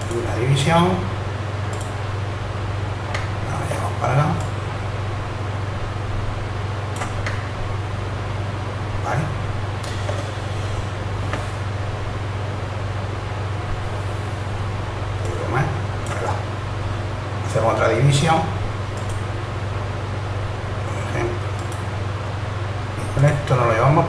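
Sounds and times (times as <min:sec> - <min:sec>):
low electrical hum: 0:00.0 - 0:24.0
sharp clicks: 0:01.7 - 0:02.0, 0:19.0 - 0:19.2, 0:21.6 - 0:21.9.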